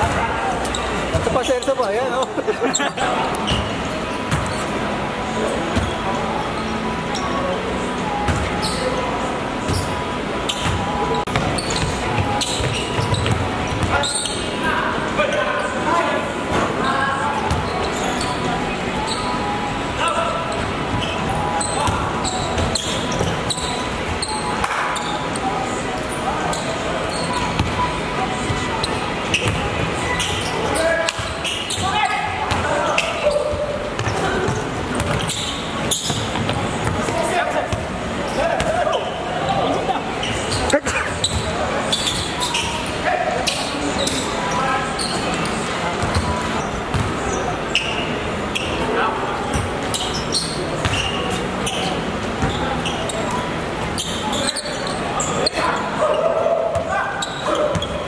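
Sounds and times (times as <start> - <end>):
players shouting and chatting: 0.0 - 58.0
basketball bouncing on court: 8.3 - 8.5, 10.5 - 14.0, 17.4 - 17.7, 27.6 - 27.8, 29.3 - 29.8, 31.1 - 37.9, 46.0 - 47.2.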